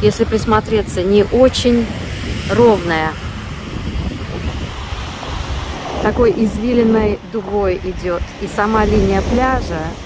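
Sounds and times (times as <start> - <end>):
wind rumbling on microphone: 0.0 - 10.0
small waves breaking on beach: 0.2 - 10.0.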